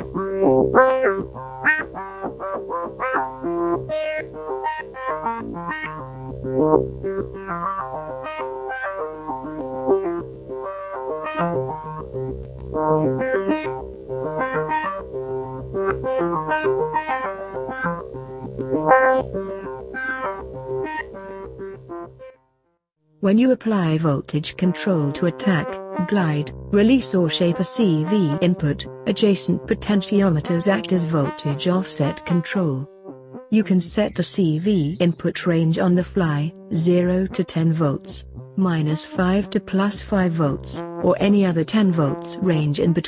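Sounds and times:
fast sequence of short synth notes: 0.0s - 22.3s.

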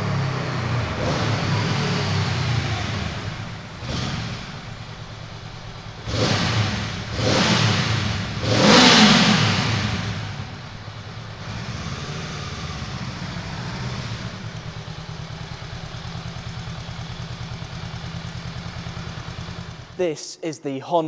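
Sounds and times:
motorcycle engine revving and idling: 0.0s - 20.0s
engine echo in concrete tunnel: 0.0s - 21.0s.

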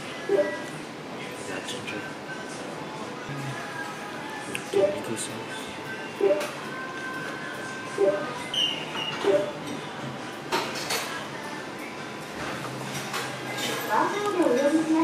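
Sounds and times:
background music: 2.3s - 15.0s.

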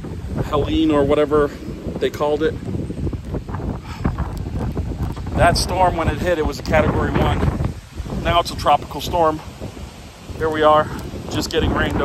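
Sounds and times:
gusty wind on microphone: 0.0s - 12.0s.

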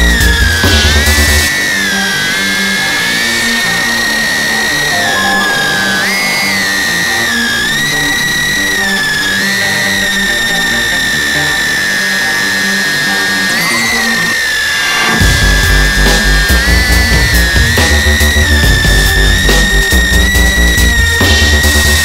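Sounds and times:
drone motors whining: 1.2s - 14.8s
electronic music: 4.6s - 8.2s.

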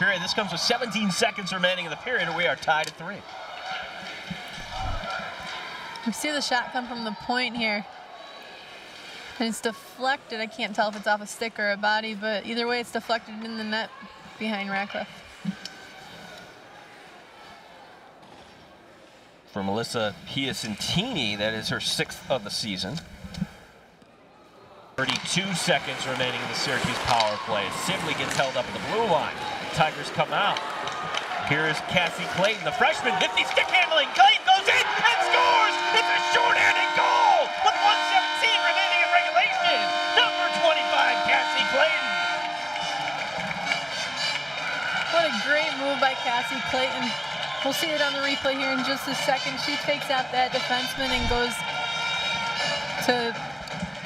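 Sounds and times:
crowd murmur in arena: 0.0s - 54.0s
arena goal horn: 32.1s - 53.8s.

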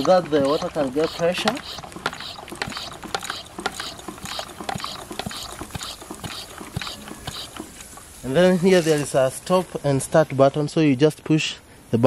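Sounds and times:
hand pump hissing and clicking: 0.0s - 9.2s.

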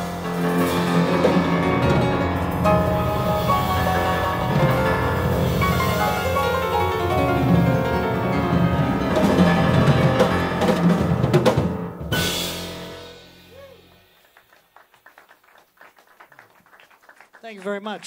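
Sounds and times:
jazz piano trio playing: 0.0s - 14.7s.

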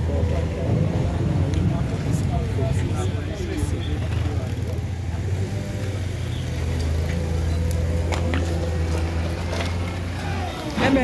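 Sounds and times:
diesel engine droning: 0.0s - 11.0s
indistinct voices talking: 0.0s - 11.0s.

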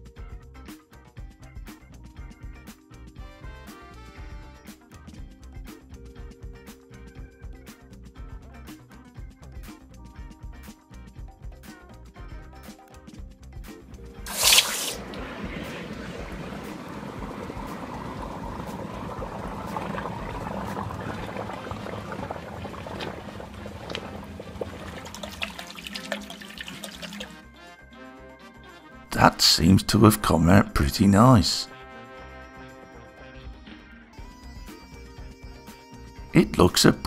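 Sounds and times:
background music: 0.0s - 37.0s
bubbling and crackling in water: 14.3s - 27.4s.

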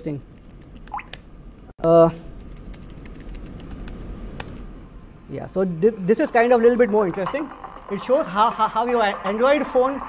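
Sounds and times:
laptop keys tapping: 2.3s - 4.6s.

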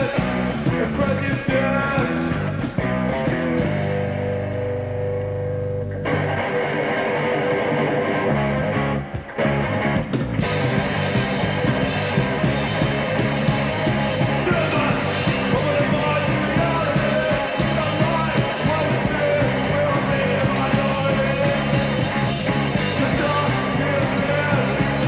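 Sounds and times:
drums and cymbals: 0.0s - 4.4s, 9.9s - 25.0s
bass guitar: 0.0s - 25.0s
electric guitar: 0.0s - 25.0s.

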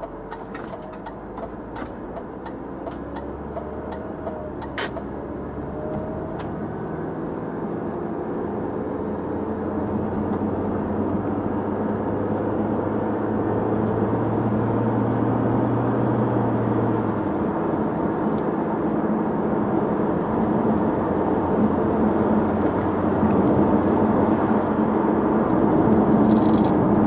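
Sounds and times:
turn signal ticking: 0.0s - 5.1s
car engine and road noise: 0.0s - 27.0s.

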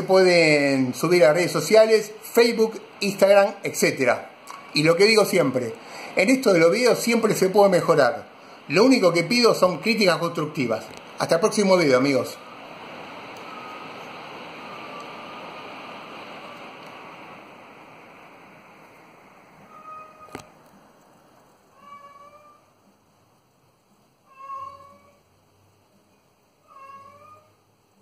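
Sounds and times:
ceiling fan rushing air: 0.0s - 28.0s
cat meowing: 19.7s - 20.5s, 21.7s - 22.7s, 24.3s - 25.2s, 26.6s - 27.6s.

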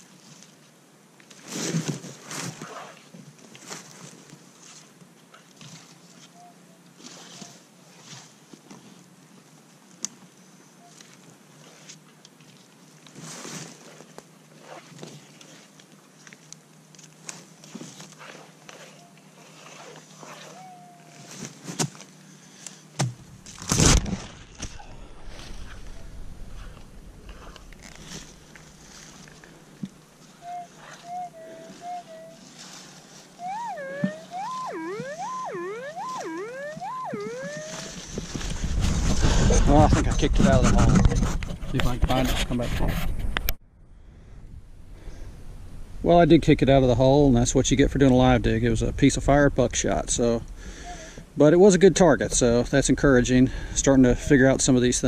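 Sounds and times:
digging and scraping in soil: 23.4s - 30.0s, 37.7s - 43.3s
metal detector tones: 30.4s - 32.7s, 33.4s - 38.2s.

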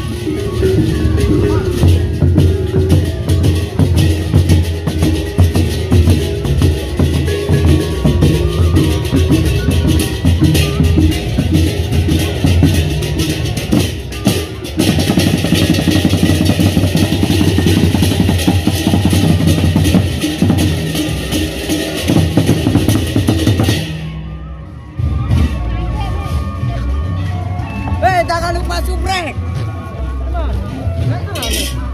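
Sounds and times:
barrel drums beaten fast: 0.0s - 24.2s
cymbals and small gongs: 0.0s - 27.3s.

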